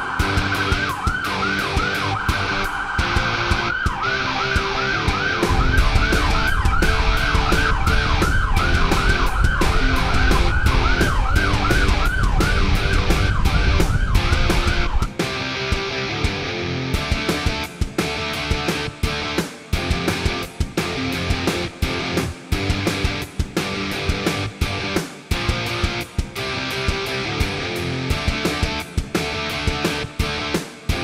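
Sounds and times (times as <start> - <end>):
electronic siren yelping: 0.0 - 15.2
background music with beat: 0.0 - 31.0
low rumble: 5.5 - 15.1.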